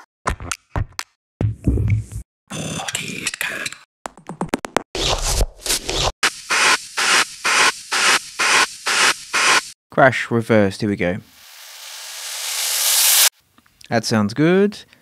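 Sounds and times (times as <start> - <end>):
noisy electronic effect sounds: 6.2 - 9.8.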